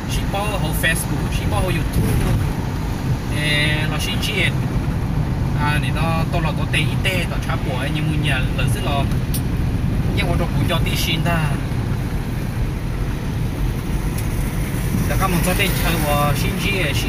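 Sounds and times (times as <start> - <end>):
road and engine rumble: 0.0 - 17.0
man speaking: 0.1 - 2.4, 3.3 - 4.6, 5.6 - 9.2, 10.1 - 11.7, 15.0 - 17.0.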